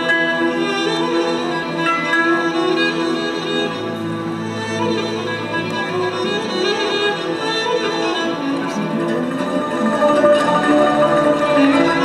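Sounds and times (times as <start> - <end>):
bowed violins: 0.0 - 12.0.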